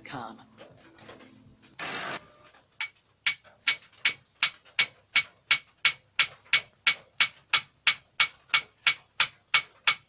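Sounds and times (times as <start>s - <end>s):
sharp evenly spaced ticks: 2.8s - 10.0s.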